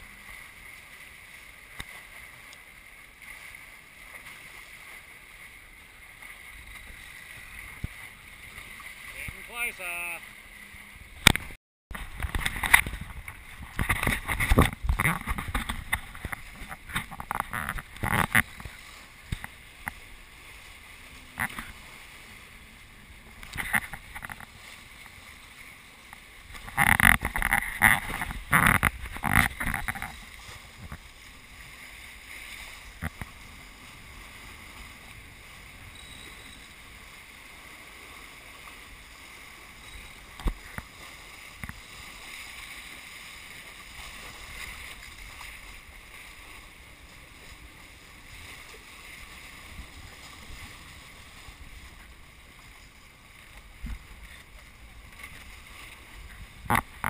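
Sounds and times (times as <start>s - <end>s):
water and wind rushing: 0.0s - 57.0s
knocks and buffeting on microphone: 11.2s - 20.0s, 53.8s - 54.2s.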